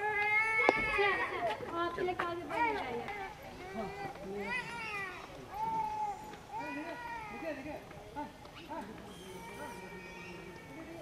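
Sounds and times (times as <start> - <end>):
people talking in background: 0.0 - 11.0.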